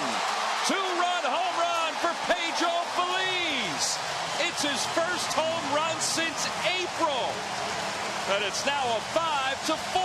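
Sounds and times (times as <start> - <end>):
crowd yells and whoops: 0.0 - 10.0
stadium crowd cheering: 0.0 - 10.0.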